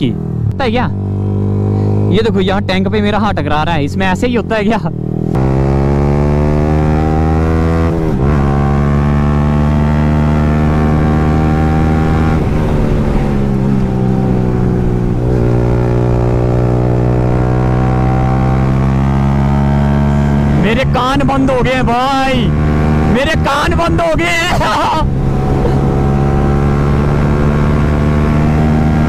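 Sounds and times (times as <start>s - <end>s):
motorcycle engine running loud: 0.0s - 29.0s.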